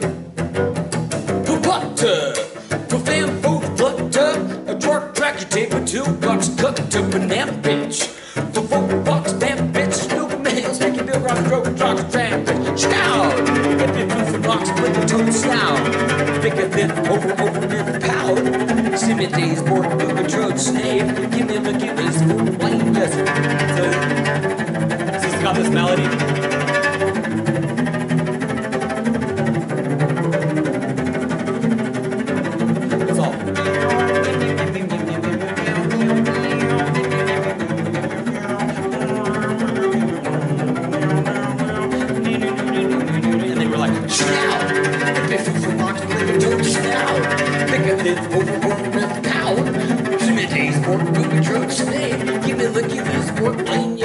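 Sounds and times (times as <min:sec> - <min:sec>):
bowed cello: 0:00.0 - 0:54.0.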